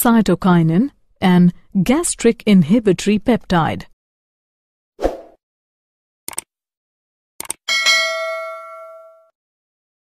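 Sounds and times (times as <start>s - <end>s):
bell ding: 7.7s - 9.3s.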